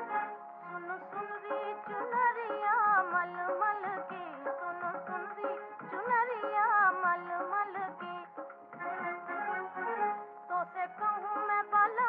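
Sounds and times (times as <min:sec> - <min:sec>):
old film song with ornamented melody: 0:00.0 - 0:12.0.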